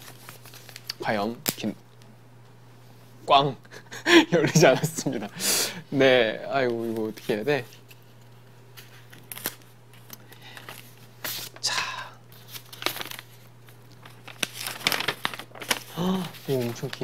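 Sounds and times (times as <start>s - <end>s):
paper rustling and crinkling: 0.0s - 1.0s, 6.6s - 11.6s, 12.3s - 17.0s
crackly paper clicks: 0.0s - 1.7s, 6.6s - 11.6s, 12.3s - 17.0s.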